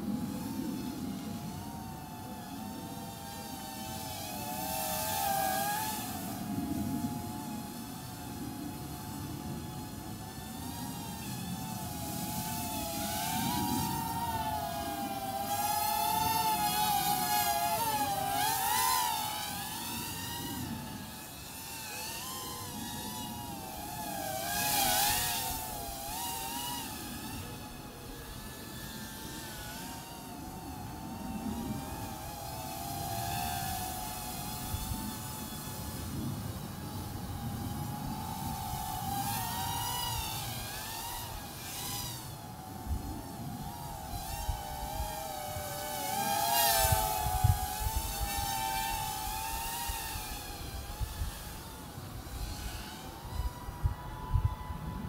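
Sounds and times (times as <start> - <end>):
quadcopter motors whining: 0.0 - 55.0.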